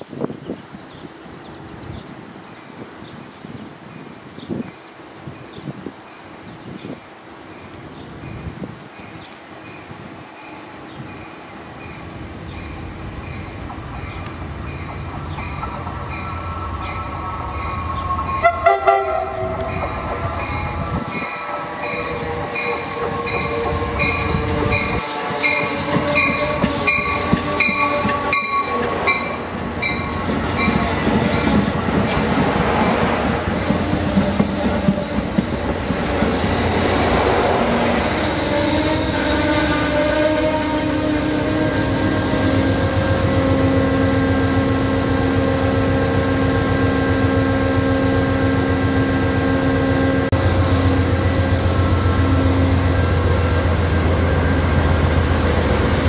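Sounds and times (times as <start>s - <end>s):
diesel locomotive engine: 7.3s - 56.0s
train bell ringing: 8.4s - 31.9s
train wheel noise: 8.8s - 56.0s
train horn blasts: 16.4s - 31.9s, 36.9s - 55.7s.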